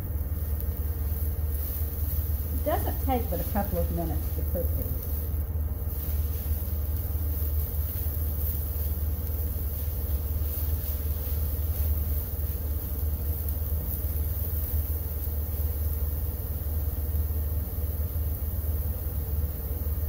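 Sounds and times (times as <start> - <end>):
mushrooms sizzling in oil: 0.0 - 20.0
steady low hum: 0.0 - 20.0.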